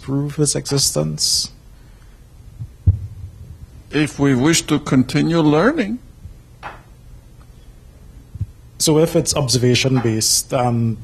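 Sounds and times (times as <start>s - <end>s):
faint low rumble: 2.4s - 4.5s
microphone handling noise: 2.6s - 3.9s, 8.3s - 8.6s
sharp low thump: 2.8s - 3.4s.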